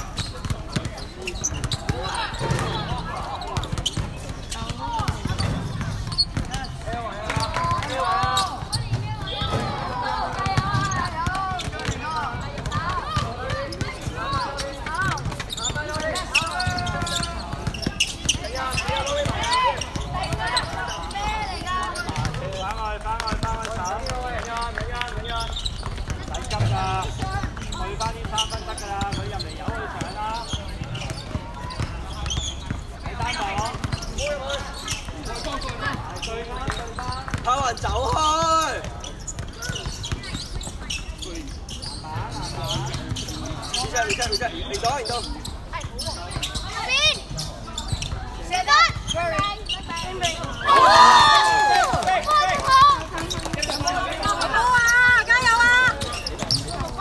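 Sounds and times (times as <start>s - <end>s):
basketball dribbling: 0.1s - 38.2s
people calling out: 49.6s - 57.0s
loud shout: 50.5s - 53.1s.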